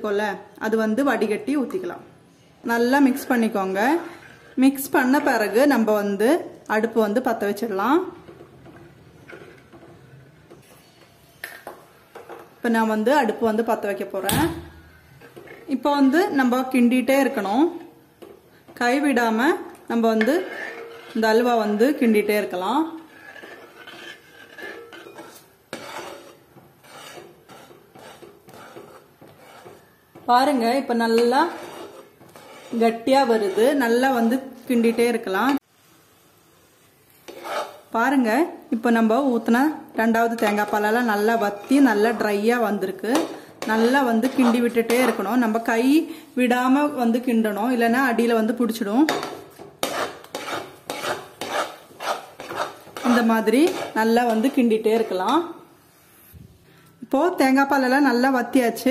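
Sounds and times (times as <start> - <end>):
metal spoon stirring in pot: 3.1 - 5.9, 7.4 - 14.0, 15.2 - 35.6, 36.4 - 38.3, 38.9 - 45.8, 47.8 - 55.6.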